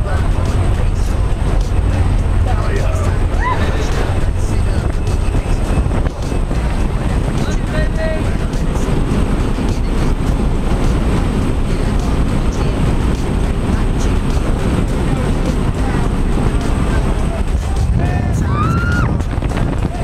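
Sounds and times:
aircraft engine noise: 0:00.0 - 0:20.0
slipstream wind rushing: 0:00.0 - 0:20.0
wind buffeting microphone: 0:00.0 - 0:20.0.

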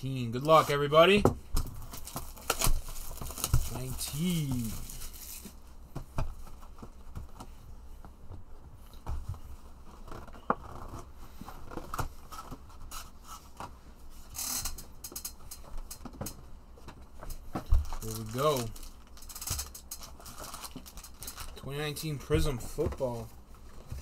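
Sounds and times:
cardboard rustle: 0:01.8 - 0:05.6, 0:17.8 - 0:21.6.

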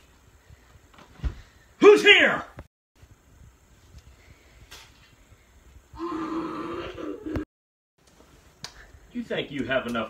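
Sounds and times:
child growling: 0:06.0 - 0:07.4.

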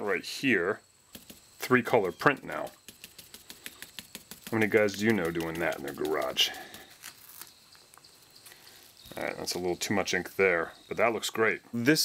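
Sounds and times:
soft rustling: 0:01.1 - 0:10.9.

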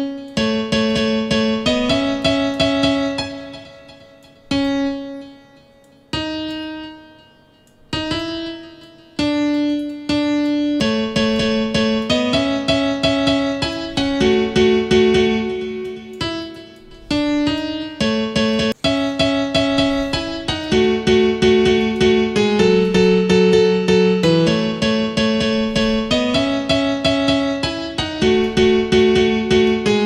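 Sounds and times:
virtual piano chords: 0:00.0 - 0:30.0.

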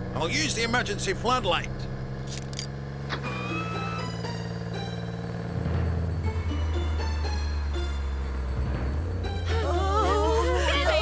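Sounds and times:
background music with low drone: 0:00.0 - 0:11.0.

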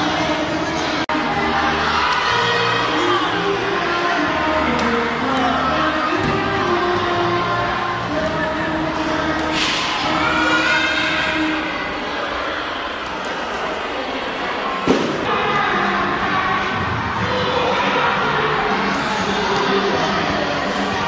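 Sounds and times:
crowd chatter: 0:00.0 - 0:21.0.

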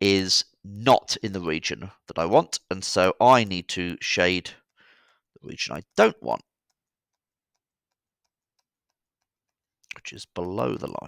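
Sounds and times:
stylus tapping tablet screen: 0:03.4 - 0:11.0.

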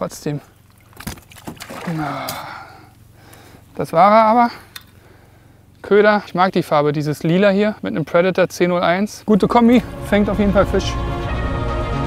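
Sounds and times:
man grunting: 0:01.8 - 0:02.7
hissing breath out: 0:01.9 - 0:03.7.

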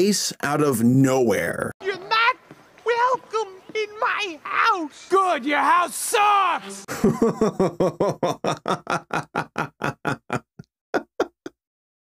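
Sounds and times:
man laughing hard: 0:06.8 - 0:11.5.

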